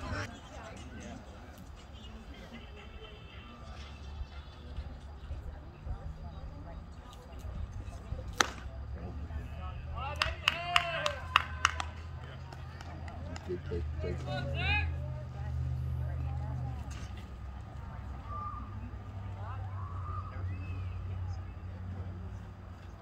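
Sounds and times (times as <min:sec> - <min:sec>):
sharp pop: 0:08.3 - 0:08.6.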